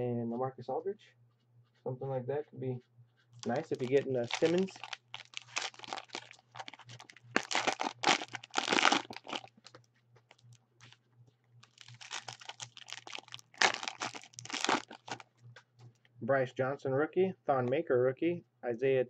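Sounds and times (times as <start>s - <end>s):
plastic wrapper crinkling: 3.4s - 11.0s, 11.6s - 15.3s.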